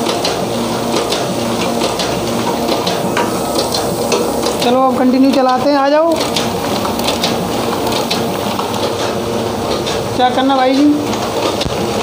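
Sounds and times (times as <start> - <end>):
printing machine rollers hissing: 0.0 - 12.0.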